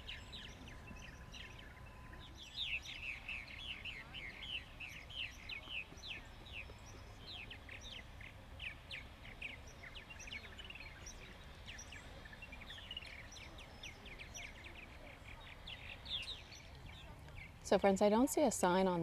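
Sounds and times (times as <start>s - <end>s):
faint low outdoor rumble: 0.0s - 19.0s
songbirds chirping: 0.0s - 19.0s.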